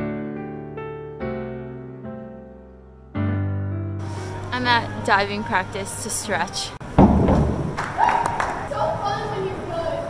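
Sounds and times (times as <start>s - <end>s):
heavy thump: 6.9s - 7.9s.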